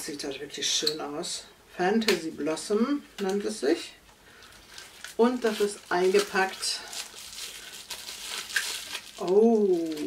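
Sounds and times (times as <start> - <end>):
plastic wrapping crinkling: 4.4 - 10.0.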